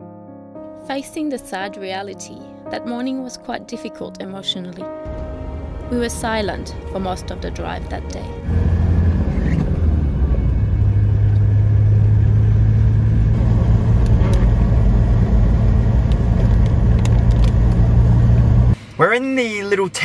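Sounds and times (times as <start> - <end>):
engine and road noise drone: 5.1 - 18.8.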